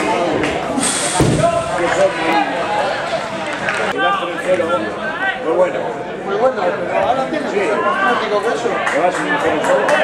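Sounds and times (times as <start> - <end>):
spectators talking and calling out: 0.0 - 10.0
dull low thump: 1.2 - 1.6.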